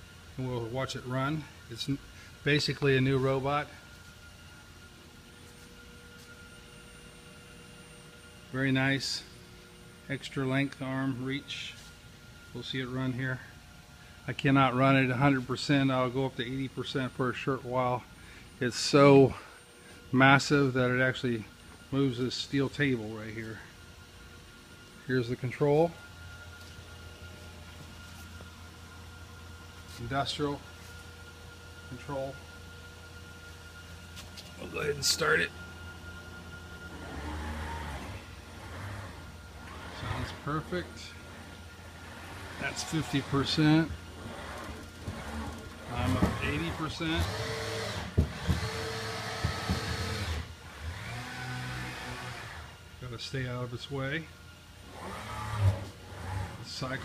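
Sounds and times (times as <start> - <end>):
faint high whine: 0.0 - 57.0
low electrical hum: 0.0 - 57.0
robot arm servo motors whining: 36.8 - 52.7, 54.9 - 56.8.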